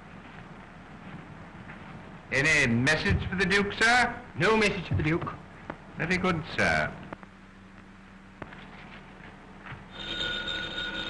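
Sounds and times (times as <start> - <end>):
telephone ringing: 9.9 - 11.0.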